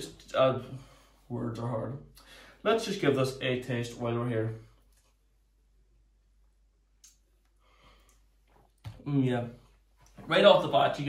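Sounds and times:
person sipping and breathing: 0:07.5 - 0:08.8.

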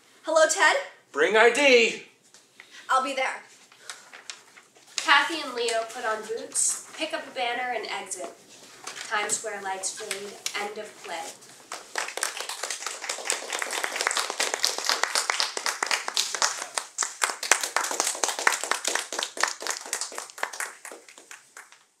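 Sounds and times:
audience applauding: 0:11.7 - 0:22.0.

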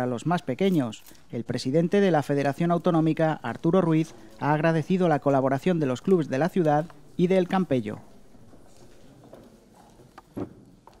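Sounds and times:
footsteps on a hard floor: 0:08.5 - 0:11.0.

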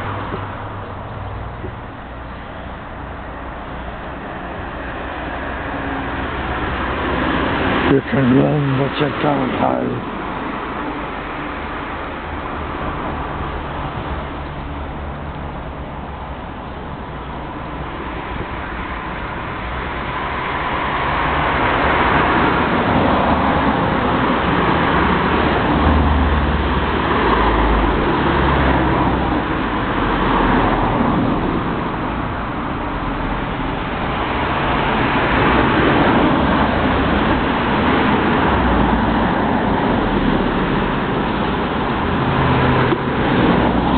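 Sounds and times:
low traffic rumble: 0:00.0 - 0:43.9
road traffic rushing: 0:00.0 - 0:43.9.

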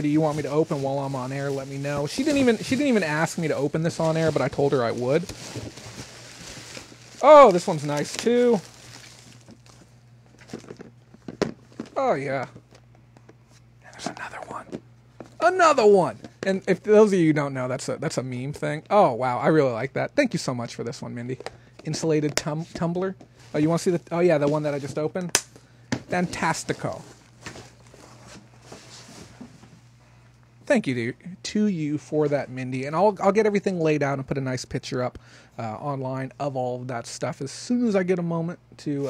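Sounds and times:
low steady hum: 0:00.0 - 0:39.0
plastic containers rustling in box: 0:00.2 - 0:12.0.

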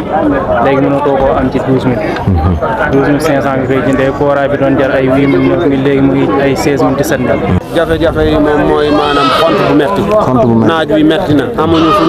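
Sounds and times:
man talking into a microphone: 0:00.3 - 0:12.0
sheep bleating: 0:08.7 - 0:09.9, 0:11.6 - 0:12.0.

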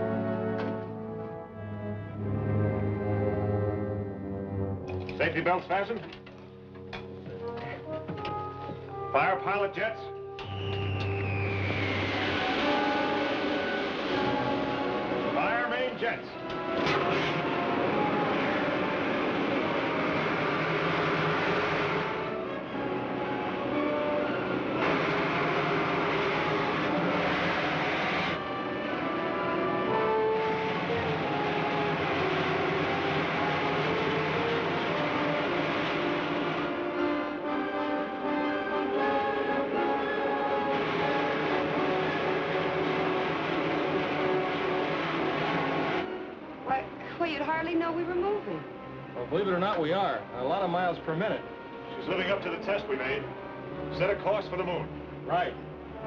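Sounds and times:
dramatic orchestral score: 0:00.0 - 0:56.0
rocket engine rushing noise: 0:10.4 - 0:15.4, 0:16.5 - 0:29.1.

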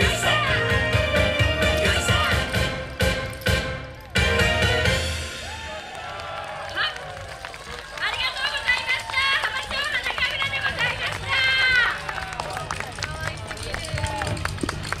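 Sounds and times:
wooden clappers clacking: 0:08.0 - 0:15.0.

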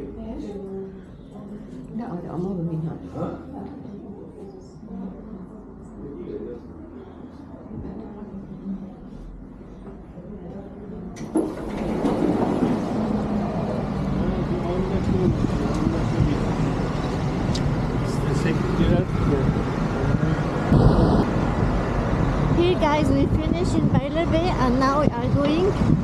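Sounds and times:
bus passing: 0:11.4 - 0:26.0
cars passing: 0:11.8 - 0:25.9
short beep: 0:20.7 - 0:21.3.

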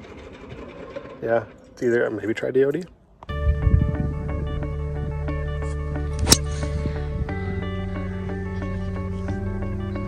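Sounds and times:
golf driver striking ball: 0:06.2 - 0:06.8.

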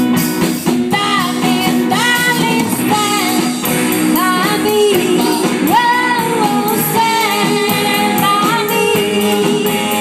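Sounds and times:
bass guitar: 0:00.0 - 0:10.0
drums and cymbals: 0:00.0 - 0:10.0
electric guitar: 0:00.0 - 0:10.0
woman singing into microphone: 0:00.9 - 0:10.0.

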